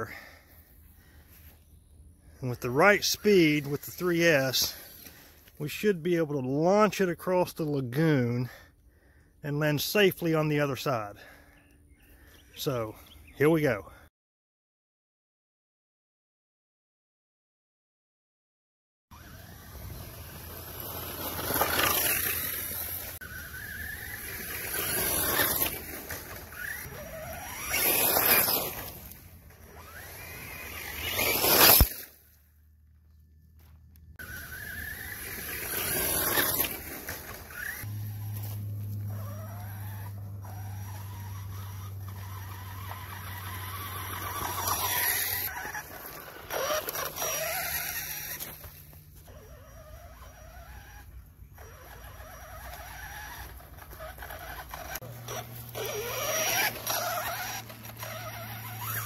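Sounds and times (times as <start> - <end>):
rc car motors whining: 0.0 - 14.0, 19.1 - 59.0.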